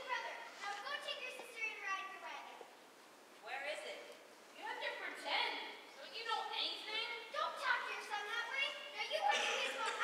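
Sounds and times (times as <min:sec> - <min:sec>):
children speaking in a hall: 0:00.0 - 0:10.0.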